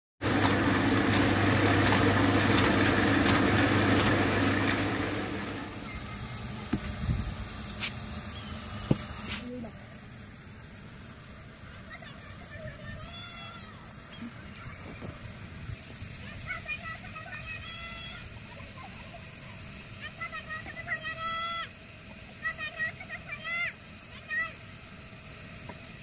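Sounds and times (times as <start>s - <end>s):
loud machine drone: 0.2s - 9.2s.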